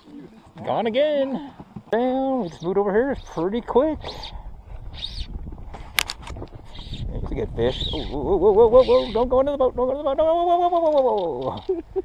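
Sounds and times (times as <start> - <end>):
wind rumbling on microphone: 1.5 - 12.0.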